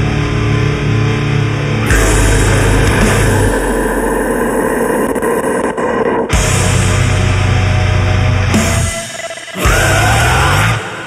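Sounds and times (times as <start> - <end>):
harsh distorted metal music: 0.0 - 11.0.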